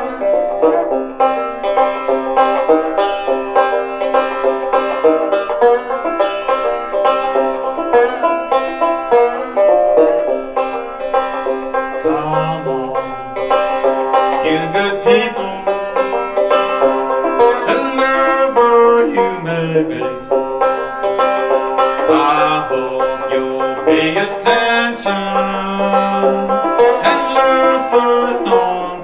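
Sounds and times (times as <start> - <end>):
banjo plucking: 0.0 - 29.0.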